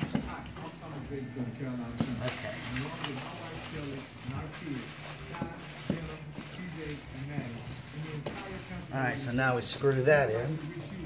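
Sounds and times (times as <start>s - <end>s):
low background voices: 0.0s - 11.0s.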